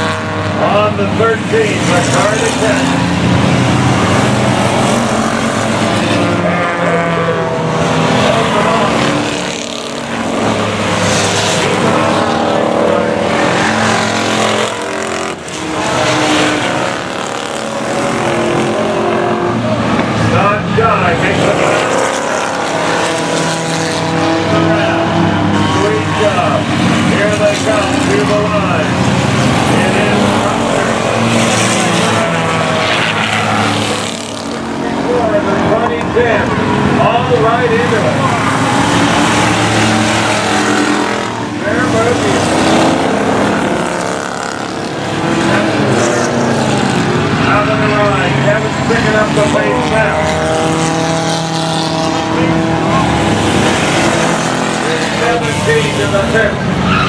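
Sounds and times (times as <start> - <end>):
racing car engines: 0.0 - 57.0.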